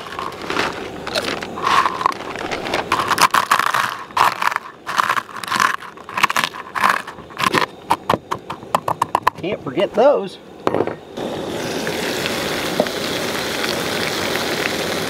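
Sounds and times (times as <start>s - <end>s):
potato chips crunching: 0.0s - 8.1s
spoon scraping plate: 1.1s - 8.1s.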